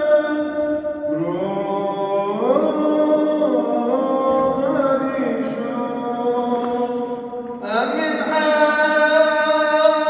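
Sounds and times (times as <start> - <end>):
man chanting with echo: 0.0 - 10.0.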